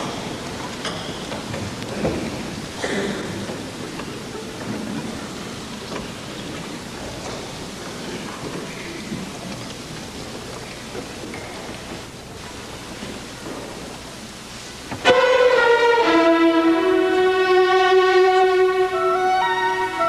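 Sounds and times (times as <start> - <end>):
audience rustles: 0.0 - 20.0
steady hall hiss: 0.0 - 20.0.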